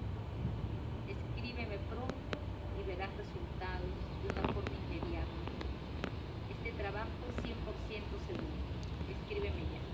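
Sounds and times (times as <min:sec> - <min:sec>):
low outdoor rumble: 0:00.0 - 0:09.9.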